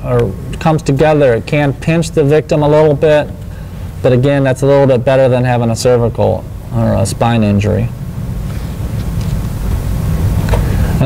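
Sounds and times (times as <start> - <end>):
clothing rubbing on microphone: 8.4 - 9.9.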